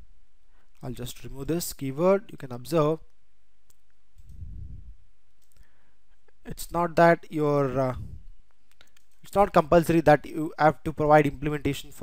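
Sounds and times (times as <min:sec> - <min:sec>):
soft low rumble: 0:04.2 - 0:05.1
computer mouse clicks: 0:08.5 - 0:09.3.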